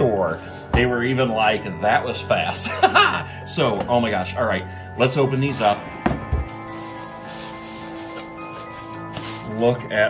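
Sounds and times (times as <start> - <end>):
background music: 0.0 - 10.0
box lid knocking and thumping: 6.0 - 6.6
tissue paper rustling: 6.4 - 9.9.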